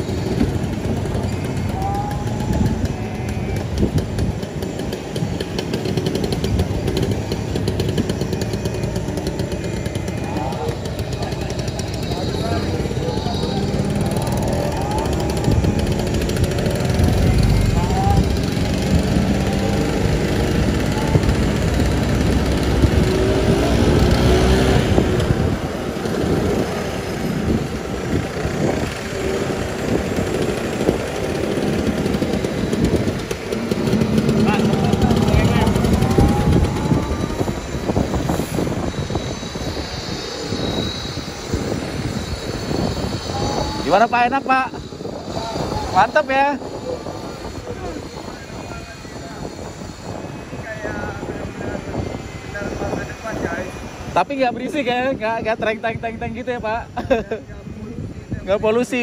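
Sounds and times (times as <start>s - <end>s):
scooter motors and traffic: 0.0s - 59.0s
wind and road noise: 0.0s - 59.0s
muffled voices: 6.2s - 23.2s, 32.1s - 59.0s.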